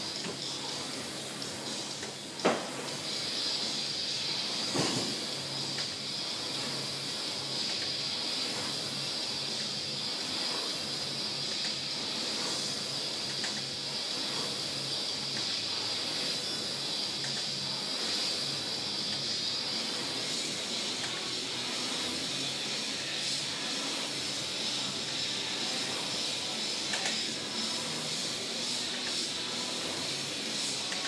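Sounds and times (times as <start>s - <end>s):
rowing machine fan whirring: 0.0s - 31.0s.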